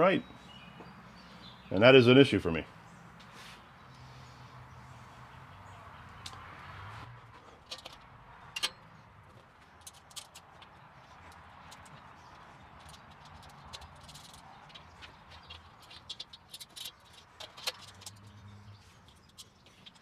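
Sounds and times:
metal parts clicking and clinking: 12.8s - 18.4s.

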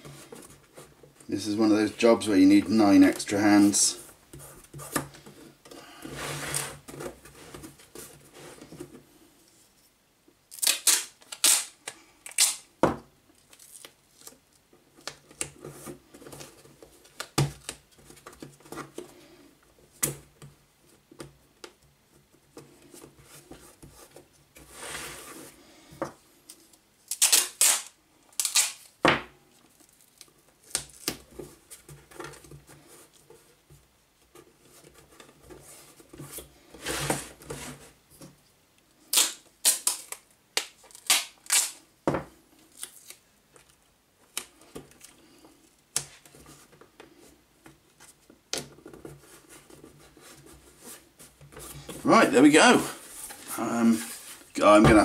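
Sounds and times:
tape pulled and torn off roll: 10.5s - 12.7s, 26.5s - 31.3s, 39.0s - 41.8s, 42.6s - 45.1s.

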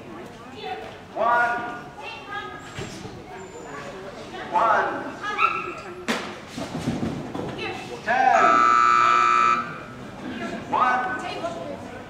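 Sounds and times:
loud electronic buzzer: 8.2s - 9.9s.

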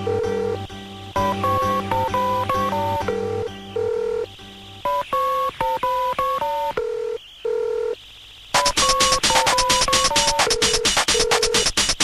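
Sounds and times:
electronic beep melody: 0.0s - 6.8s.

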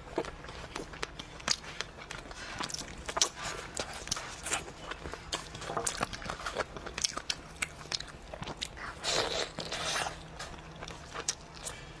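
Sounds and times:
person biting and chewing meat: 0.0s - 12.0s.

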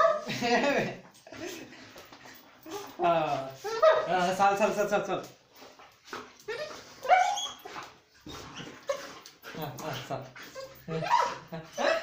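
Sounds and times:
dog whining and yelping: 3.6s - 4.1s, 6.4s - 9.6s, 10.4s - 12.0s.

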